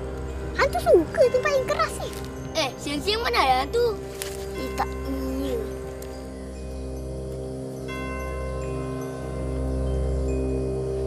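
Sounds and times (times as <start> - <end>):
chime-like mallet notes: 0.0 - 11.0
sustained tones over low bass: 0.0 - 11.0.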